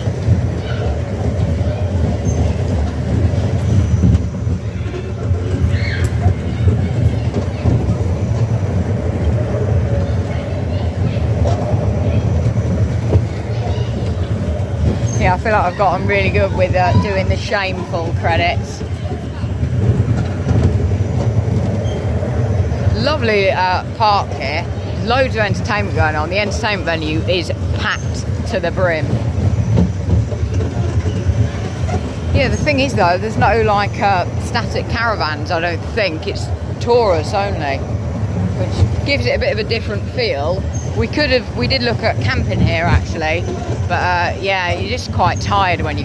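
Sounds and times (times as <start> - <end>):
roller coaster wheels rumbling on rails: 0.0 - 46.0.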